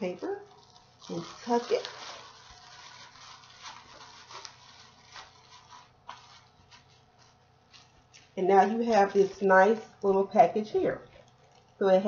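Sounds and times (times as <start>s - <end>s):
plastic bag and paper rustling: 0.0s - 10.0s
sharp plastic crackles: 0.1s - 8.4s.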